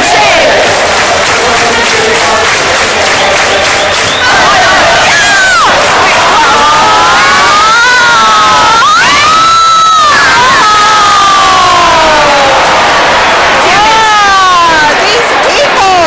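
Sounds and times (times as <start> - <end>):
stadium crowd cheering: 0.0 - 16.0
long high-pitched shouts: 4.2 - 12.6.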